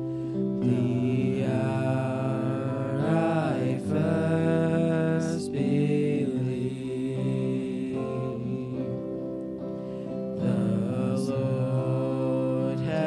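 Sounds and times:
electric guitar: 0:00.0 - 0:13.0
keyboard playing: 0:00.0 - 0:13.0
voices singing held notes: 0:00.0 - 0:13.0.

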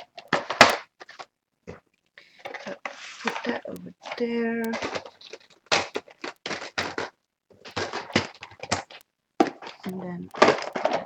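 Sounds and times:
small objects knocking on table: 0:02.5 - 0:11.0.

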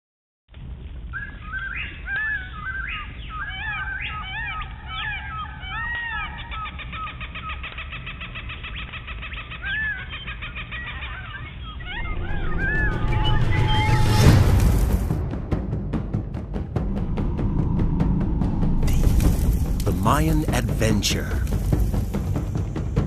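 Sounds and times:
birds chirping and trilling: 0:01.1 - 0:15.0, 0:16.9 - 0:23.0
steady low rumble: 0:12.0 - 0:23.0.

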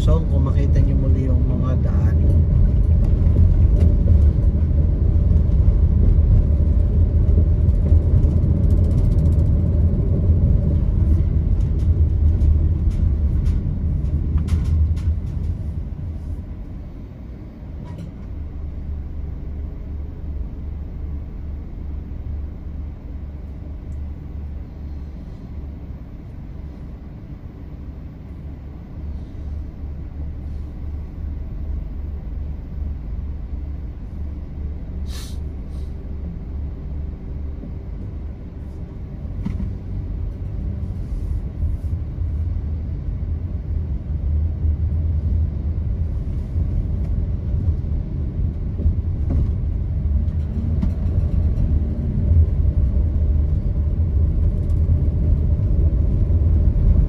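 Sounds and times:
vehicle engine rumble: 0:00.0 - 0:57.0.

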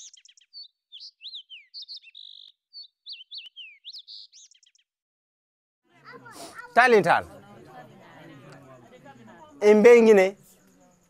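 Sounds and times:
bird chirps and whistles: 0:00.0 - 0:04.8.

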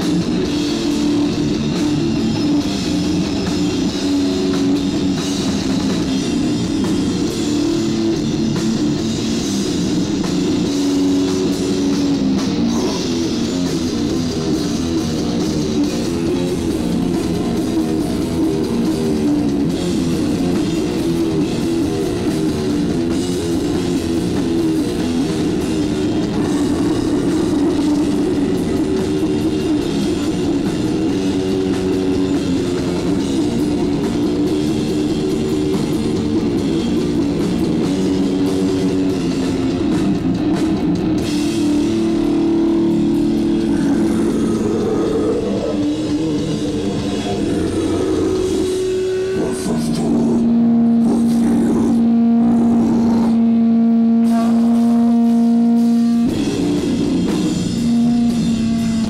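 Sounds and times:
metal band playing live: 0:00.0 - 0:59.0.

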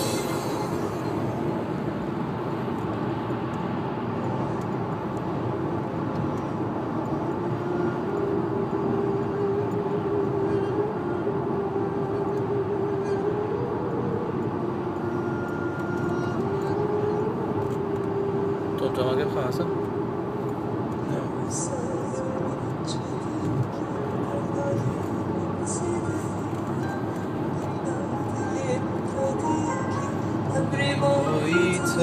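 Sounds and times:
road and engine drone: 0:00.0 - 0:32.0.

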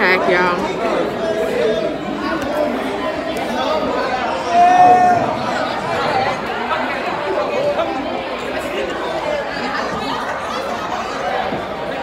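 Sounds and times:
crowd of students chattering: 0:00.0 - 0:12.0.

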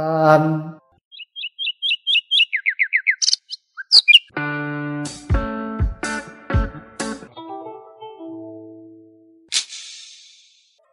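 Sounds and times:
bird chirping: 0:01.0 - 0:04.3.

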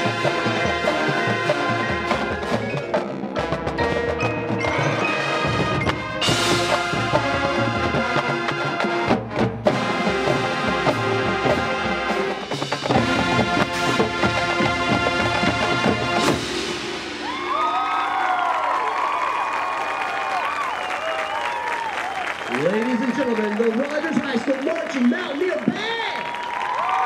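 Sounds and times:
marching band brass and percussion: 0:00.0 - 0:19.2
crowd cheering and applauding: 0:16.9 - 0:27.0.

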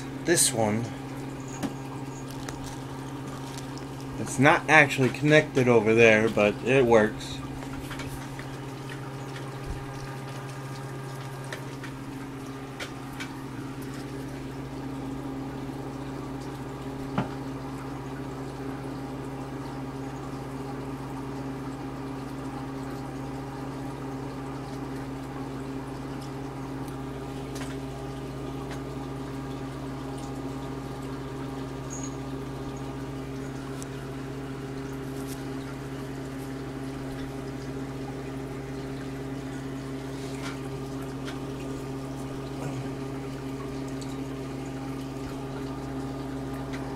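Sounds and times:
aquarium pump hum: 0:00.0 - 0:46.9
water bubbling and trickling: 0:00.0 - 0:46.9.

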